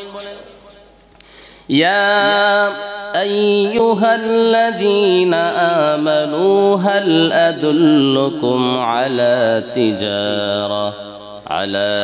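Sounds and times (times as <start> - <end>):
man chanting through microphone: 0.0 - 0.9, 1.7 - 12.0.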